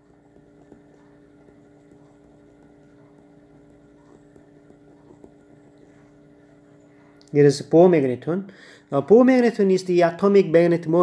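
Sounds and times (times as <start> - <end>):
stylus ticking on tablet screen: 0.0 - 7.3
faint electrical hum: 0.0 - 11.0.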